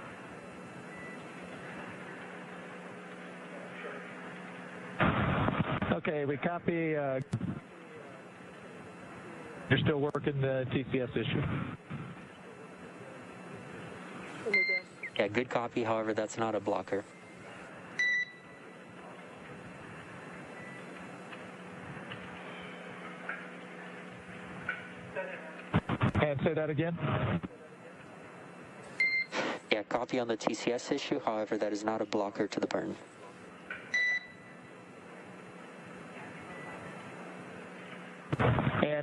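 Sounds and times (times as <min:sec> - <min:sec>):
steady hiss and low hum: 0:00.0 - 0:39.0
low hiss on radio line: 0:05.0 - 0:17.9, 0:29.3 - 0:33.5.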